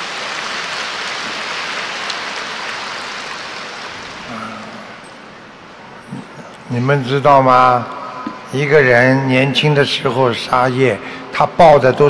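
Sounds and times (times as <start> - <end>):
audience applauding: 0.0 - 5.0.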